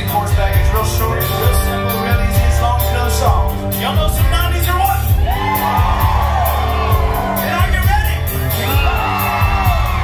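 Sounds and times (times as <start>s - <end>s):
country band playing: 0.0s - 10.0s.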